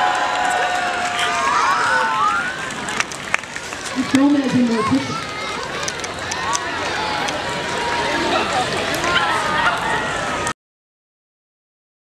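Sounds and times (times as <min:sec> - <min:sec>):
outdoor crowd chattering: 0:00.0 - 0:10.6.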